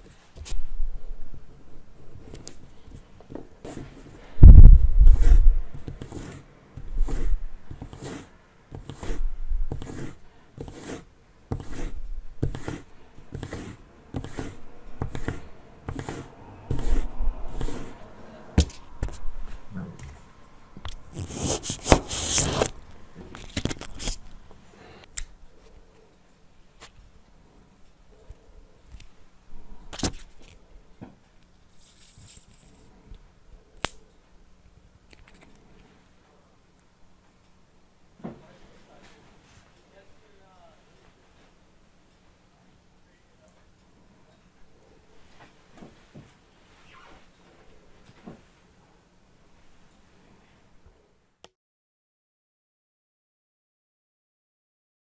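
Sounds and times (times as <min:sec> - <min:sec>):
needle scraping against paper: 0:05.0 - 0:18.0, 0:20.9 - 0:22.8.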